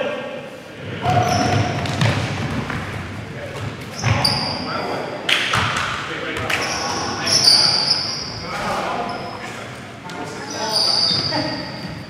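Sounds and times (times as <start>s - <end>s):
voices echoing in a hall: 0.0s - 12.0s
sneakers squeaking on hardwood: 1.1s - 2.8s, 3.6s - 4.7s, 6.4s - 9.5s, 10.1s - 12.0s
basketball bouncing: 1.1s - 3.0s.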